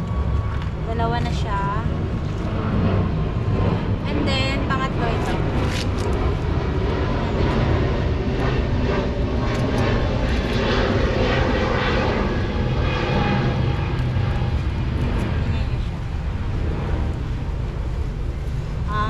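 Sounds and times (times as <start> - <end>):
loud engine drone: 0.0 - 19.0.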